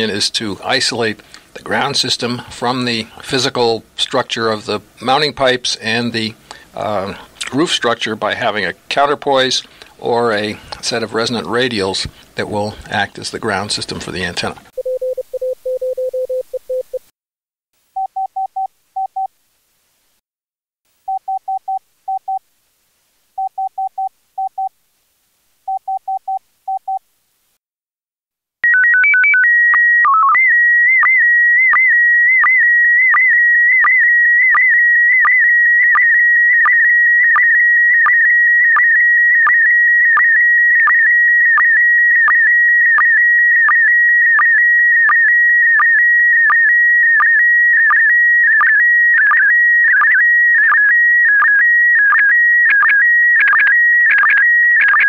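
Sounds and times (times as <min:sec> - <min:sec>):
morse code beeps: 0:14.8 - 0:17.0, 0:48.6 - 0:55.0.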